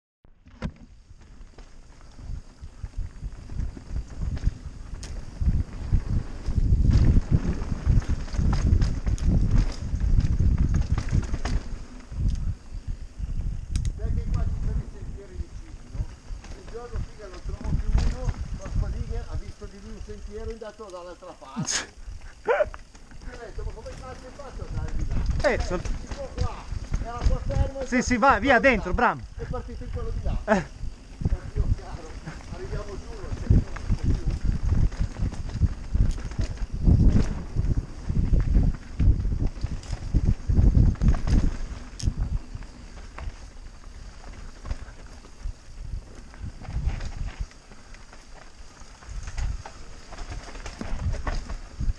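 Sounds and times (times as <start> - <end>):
mountain bike rumbling over dirt: 0.3 - 21.3, 22.0 - 51.9
bike rattling over bumps: 0.3 - 51.9.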